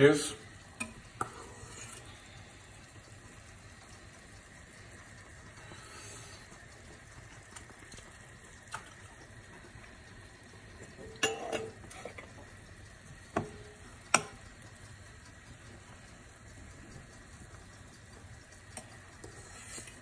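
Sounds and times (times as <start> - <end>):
food sizzling in a frying pan: 0.0 - 20.0.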